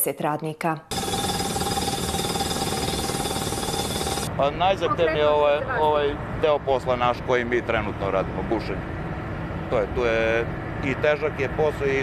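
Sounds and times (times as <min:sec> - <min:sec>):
rock drill hammering: 0:00.9 - 0:04.3
drilling rig engine running: 0:00.9 - 0:12.0.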